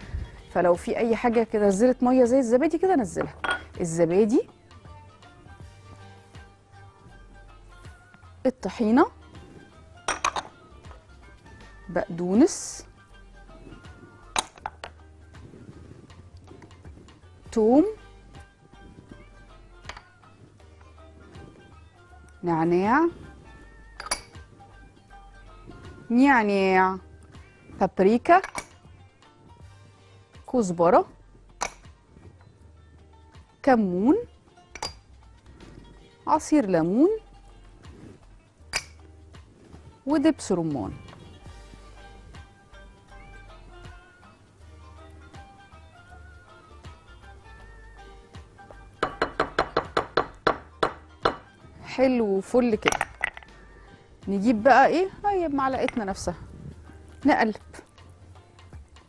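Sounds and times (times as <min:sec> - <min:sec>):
faint background music: 0:00.0 - 0:59.0
kitchenware knocking on hard surface: 0:03.2 - 0:03.7, 0:49.0 - 0:51.5
spatula clinking glass bowl: 0:24.0 - 0:24.4.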